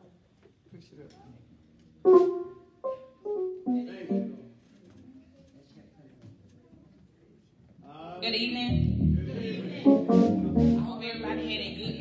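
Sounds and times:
church keyboard phrase: 0:02.1 - 0:04.6, 0:08.8 - 0:12.0.

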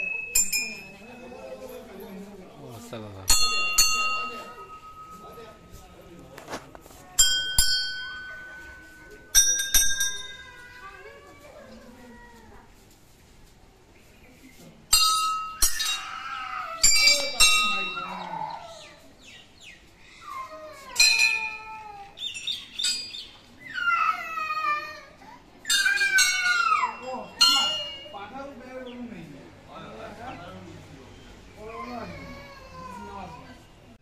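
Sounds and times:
brass bells clanging: 0:00.0 - 0:02.0, 0:03.2 - 0:10.7, 0:14.9 - 0:16.2, 0:16.8 - 0:18.4, 0:21.0 - 0:21.7, 0:25.6 - 0:28.7.

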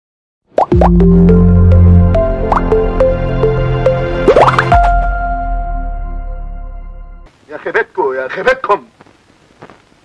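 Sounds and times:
rising plops: 0:04.2 - 0:04.8.

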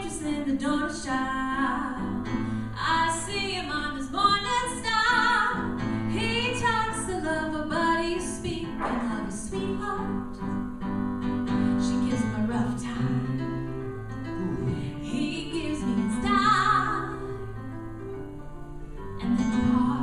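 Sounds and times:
woman singing: 0:00.0 - 0:10.5, 0:11.8 - 0:13.5, 0:14.9 - 0:17.4, 0:19.2 - 0:20.0
acoustic guitar: 0:04.1 - 0:17.4
keyboard: 0:04.3 - 0:20.0.

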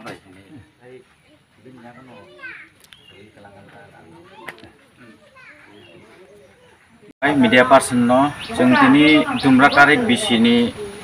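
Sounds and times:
faint voices talking: 0:00.0 - 0:11.0.

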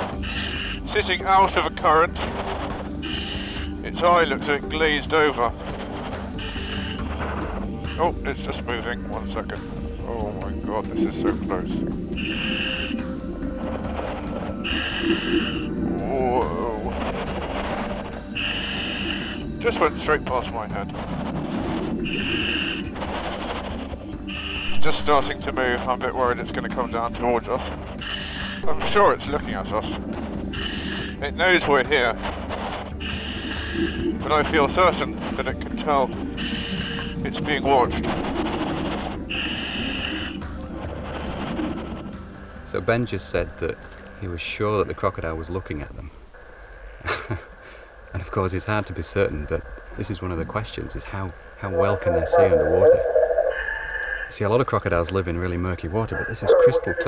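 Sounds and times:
diver breathing through regulator: 0:00.0 - 0:08.2, 0:10.8 - 0:25.8, 0:27.5 - 0:43.2, 0:46.2 - 0:48.2, 0:51.3 - 0:54.5
background music: 0:00.0 - 0:57.0.

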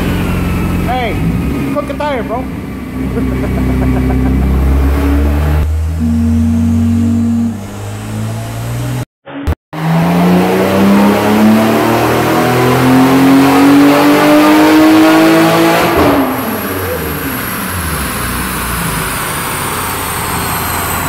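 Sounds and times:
car engine revving on a dyno: 0:00.0 - 0:09.1, 0:09.8 - 0:21.0.

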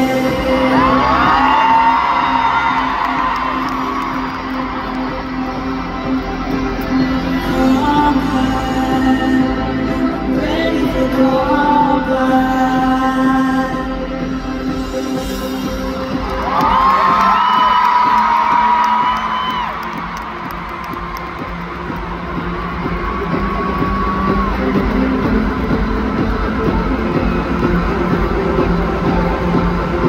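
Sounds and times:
crowd cheering: 0:00.0 - 0:08.2, 0:16.1 - 0:30.0
stadium music: 0:00.0 - 0:30.0
crowd whooping: 0:00.4 - 0:06.3, 0:16.2 - 0:30.0.

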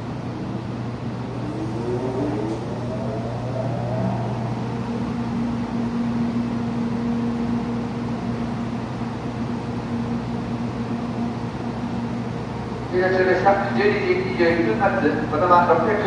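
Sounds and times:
fan-like rush: 0:00.0 - 0:06.7
train electrical hum: 0:00.0 - 0:16.0.

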